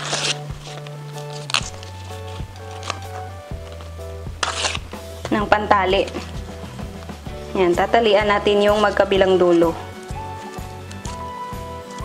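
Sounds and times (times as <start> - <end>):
leaf tearing: 0.0 - 5.4, 8.7 - 12.0
background music with bass: 0.0 - 12.0.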